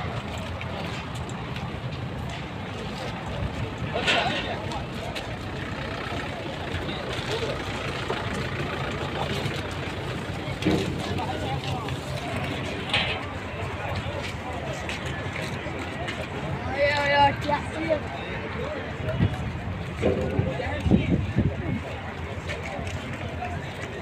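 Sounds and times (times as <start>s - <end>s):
large vehicle engine hum: 0.0s - 24.0s
outdoor background noise: 0.0s - 24.0s
people talking indistinctly: 2.1s - 24.0s.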